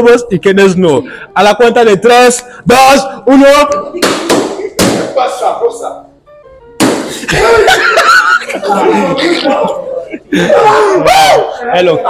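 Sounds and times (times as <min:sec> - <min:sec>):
balloons bursting: 0:04.0 - 0:05.2, 0:06.8 - 0:07.3.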